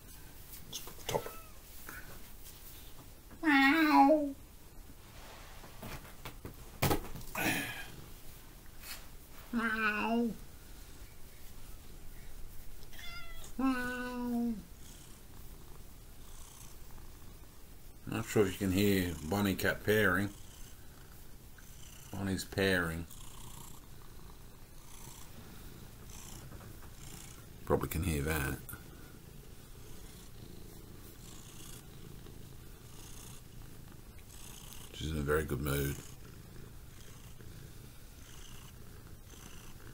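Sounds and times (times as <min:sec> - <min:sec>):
cat meowing: 0:01.1 - 0:01.6, 0:12.9 - 0:14.3
cat purring: 0:09.6 - 0:39.9.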